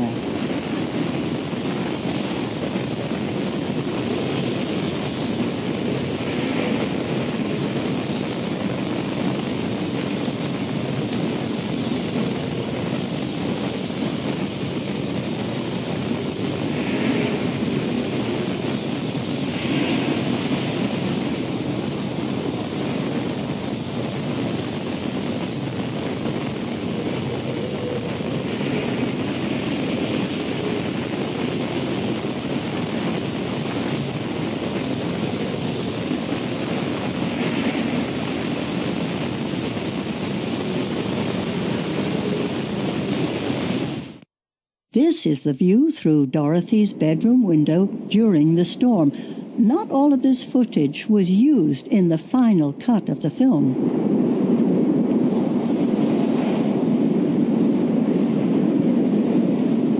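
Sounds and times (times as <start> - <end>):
rushing storm wind: 0.0 - 44.3, 45.0 - 59.9.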